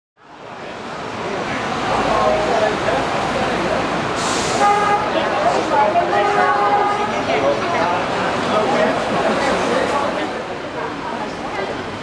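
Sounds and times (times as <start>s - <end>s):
traffic noise: 0.2s - 12.0s
people talking: 0.8s - 12.0s
short hiss: 4.2s - 4.7s.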